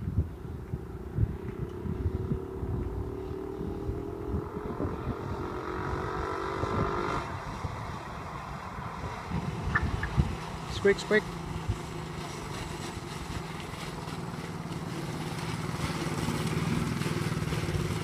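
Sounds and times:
wind buffeting microphone: 0.0s - 18.0s
go-kart engine revving: 1.3s - 18.0s.

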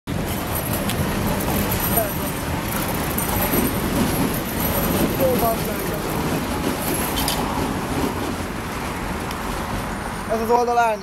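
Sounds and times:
street traffic noise: 0.1s - 11.0s
tram drawing up on rails: 0.1s - 11.0s.

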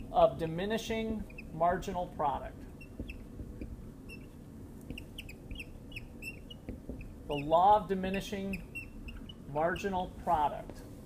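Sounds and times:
marker squeaking on whiteboard: 0.0s - 10.7s.

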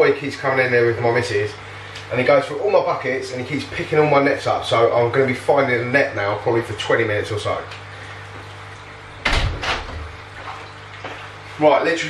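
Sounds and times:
door shutting with a thud: 9.2s - 10.1s.

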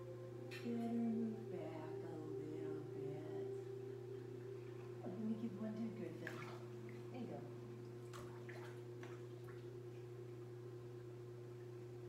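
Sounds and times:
steady low hum: 0.0s - 12.0s
pool water splashing and dripping: 4.4s - 5.4s, 6.1s - 10.5s.

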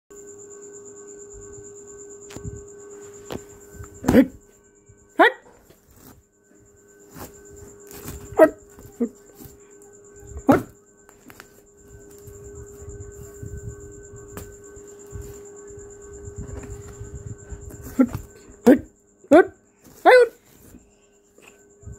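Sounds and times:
faint steady hum: 0.1s - 21.9s.

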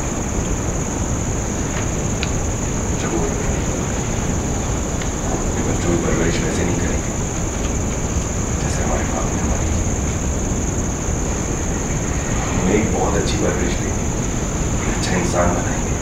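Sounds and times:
high-pitched whine: 0.0s - 16.0s
low room rumble: 0.0s - 16.0s.

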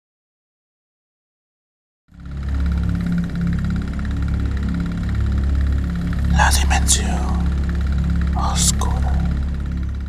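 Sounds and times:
low rumbling drone: 6.0s - 10.0s.

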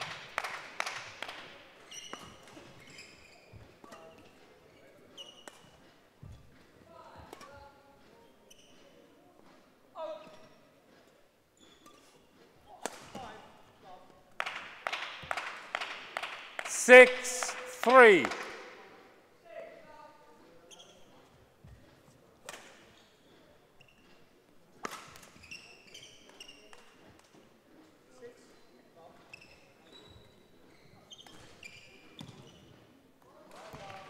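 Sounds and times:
players' footsteps: 16.7s - 18.8s.

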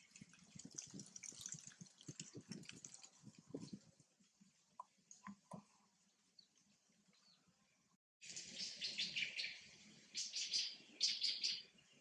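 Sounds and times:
birds chirping: 6.4s - 12.0s.

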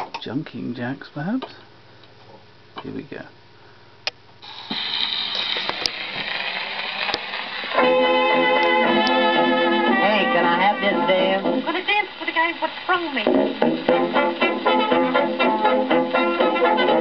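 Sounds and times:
record surface hiss: 0.0s - 17.0s
dance band record playing: 4.5s - 17.0s.

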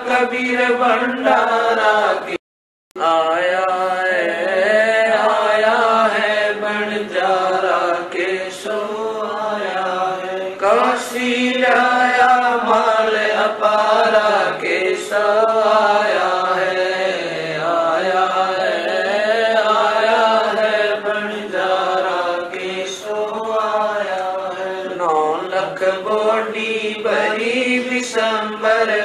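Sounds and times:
woman chanting melodically: 4.4s - 29.0s.

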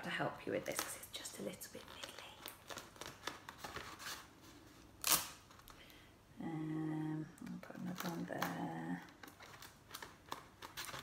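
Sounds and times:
sticky tape ripping: 5.0s - 5.7s
paper plates crinkling: 7.6s - 11.0s.

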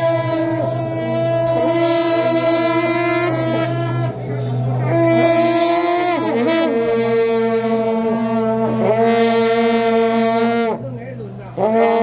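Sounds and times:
wind instrument holding long notes: 0.0s - 12.0s.

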